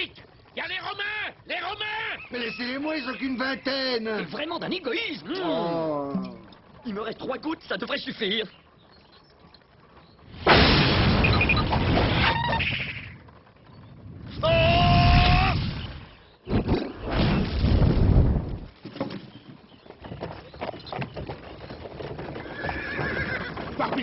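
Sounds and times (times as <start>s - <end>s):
horse whinnying: 1.9s - 4.3s, 22.2s - 24.0s
scattered clattering: 6.4s - 14.4s.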